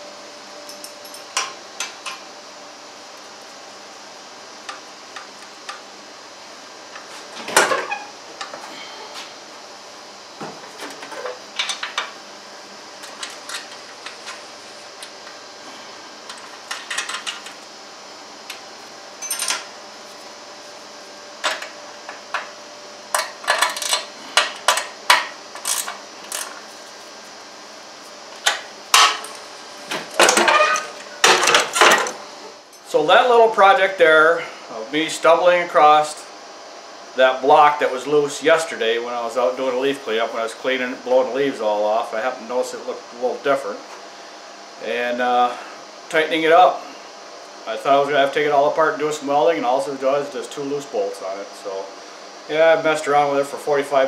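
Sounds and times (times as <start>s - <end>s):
steady hum: 0.0s - 54.0s
tools clinking on metal frame: 19.2s - 19.7s.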